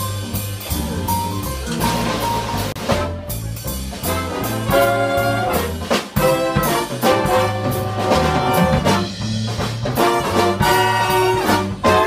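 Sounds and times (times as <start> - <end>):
bass line: 0.0 - 12.0
steady drum beat: 0.0 - 12.0
brass section holding chords: 4.1 - 9.4, 10.0 - 12.0.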